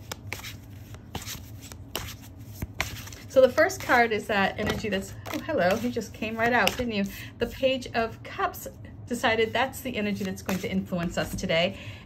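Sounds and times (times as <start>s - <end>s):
cards being shuffled: 0.0s - 6.9s.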